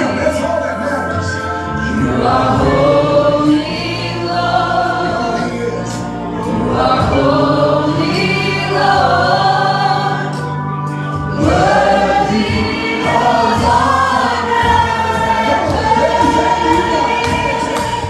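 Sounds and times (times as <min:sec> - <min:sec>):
band with sustained bass: 0:00.0 - 0:18.0
women singing backup: 0:01.9 - 0:05.7, 0:06.4 - 0:10.4, 0:11.3 - 0:18.0.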